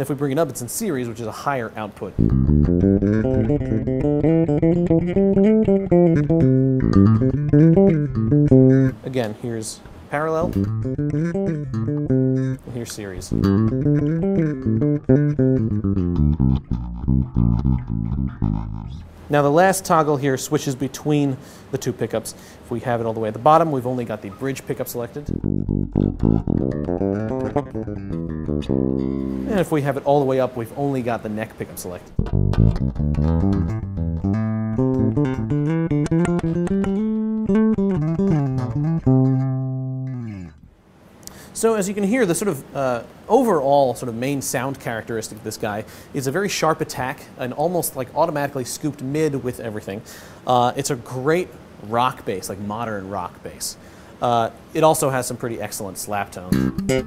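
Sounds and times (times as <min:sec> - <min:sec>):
electric bass plucked notes: 0:02.1 - 0:09.1, 0:10.4 - 0:19.2, 0:25.2 - 0:29.9, 0:32.1 - 0:40.8, 0:56.5 - 0:57.0.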